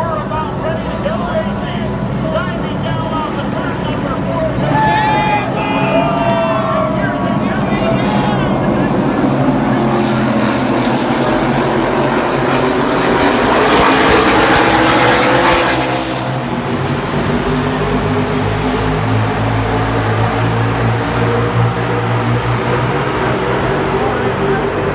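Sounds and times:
race car engines: 0:00.0 - 0:24.9.

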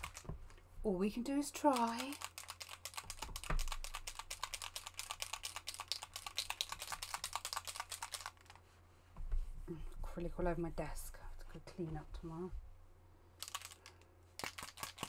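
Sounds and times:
fast typing on keyboard: 0:00.0 - 0:00.3, 0:01.5 - 0:08.6, 0:13.4 - 0:15.0.

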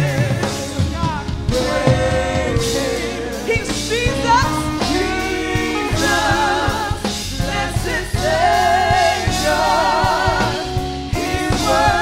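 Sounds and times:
drum strikes: 0:00.0 - 0:12.0
instrumental accompaniment: 0:00.0 - 0:12.0
women singing gospel song: 0:00.0 - 0:12.0.

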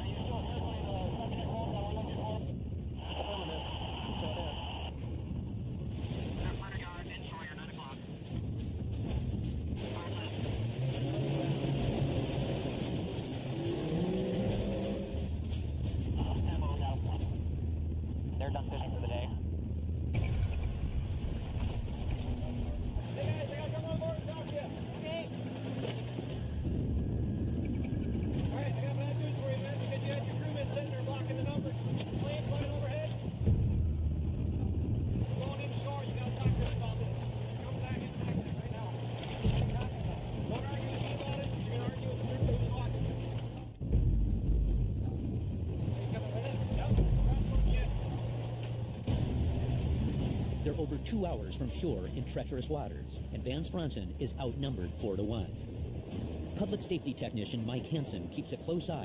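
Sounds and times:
boat motor running: 0:00.0 - 0:59.0.

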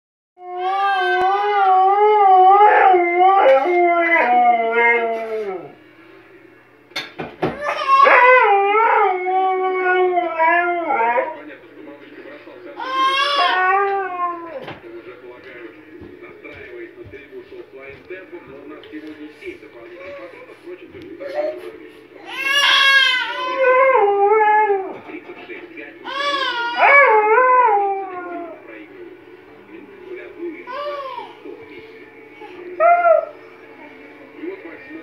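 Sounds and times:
husky howling: 0:00.4 - 0:05.8, 0:07.6 - 0:11.4, 0:12.8 - 0:14.6, 0:22.3 - 0:25.0, 0:26.1 - 0:28.6, 0:32.8 - 0:33.4.

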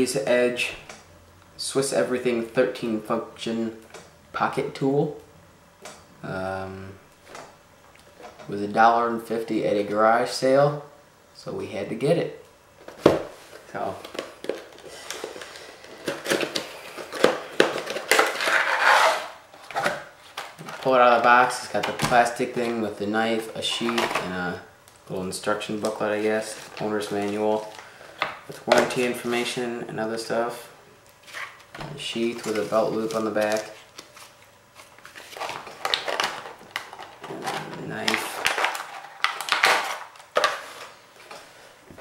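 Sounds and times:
packaging clicks and knocks: 0:35.4 - 0:40.8.

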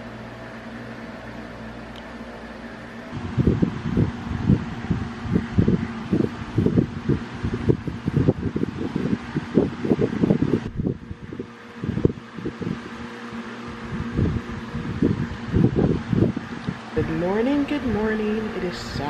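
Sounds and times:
steady low hum: 0:00.0 - 0:19.0
wind buffeting microphone: 0:03.1 - 0:19.0.

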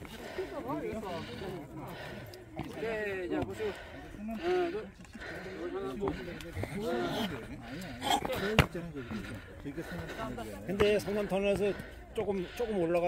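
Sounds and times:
people talking indistinctly: 0:00.0 - 0:13.0.

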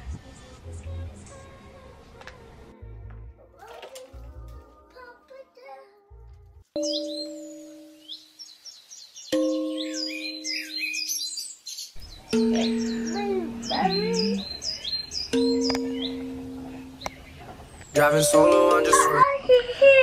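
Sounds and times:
soft music: 0:00.0 - 0:08.6, 0:09.3 - 0:20.0
birds chirping: 0:06.8 - 0:19.6.

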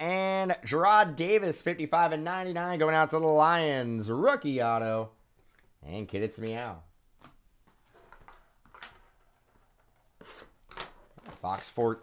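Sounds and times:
cardboard rustling scrape: 0:10.2 - 0:12.0.

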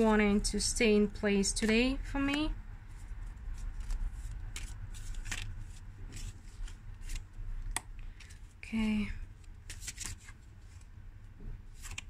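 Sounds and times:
cards being shuffled: 0:01.6 - 0:08.5, 0:09.4 - 0:10.9, 0:11.7 - 0:12.0.

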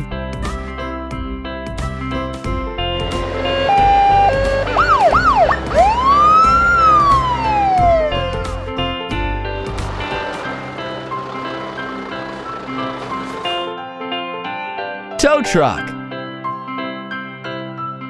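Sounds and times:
background music: 0:00.0 - 0:18.0
cartoon police siren: 0:03.1 - 0:08.4.

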